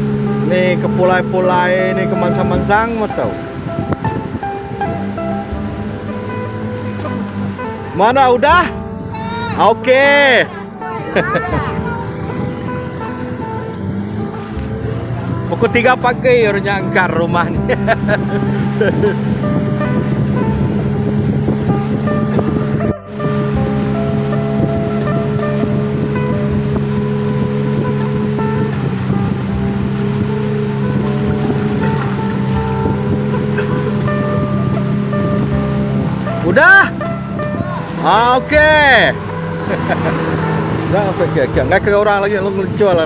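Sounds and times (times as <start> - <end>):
music playing: 0.0 - 43.0
outboard motor running: 0.0 - 43.0.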